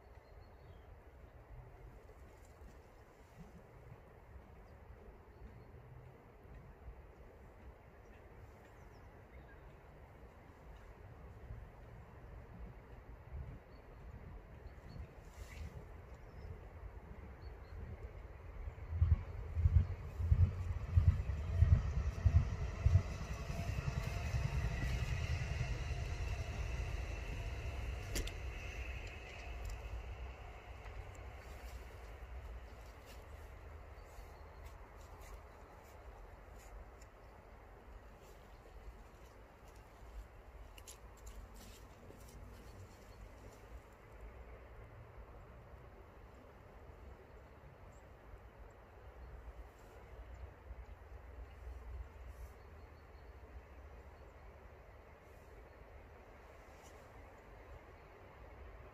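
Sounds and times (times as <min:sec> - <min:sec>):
faint low outdoor rumble: 0:00.0 - 0:58.9.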